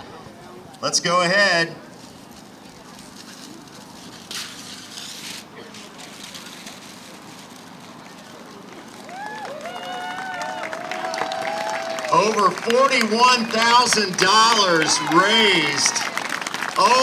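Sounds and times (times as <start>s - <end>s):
wrapping paper rustling and tearing: 2.0s - 9.7s
voices exclaiming and cheering: 9.0s - 17.0s.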